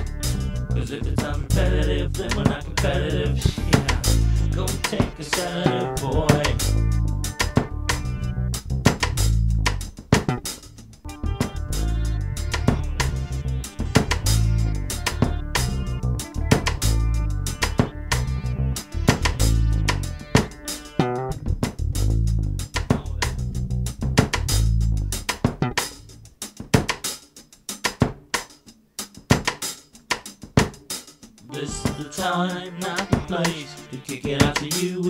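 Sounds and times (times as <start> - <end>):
bass guitar groove: 0.0 - 34.8
rock funk band playing: 0.0 - 35.0.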